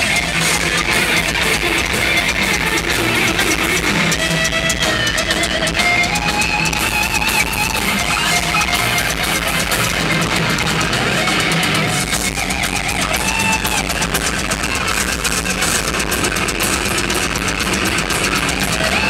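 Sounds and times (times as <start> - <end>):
distorted electric guitar: 0.0 - 19.0
metal band playing live: 0.0 - 19.0.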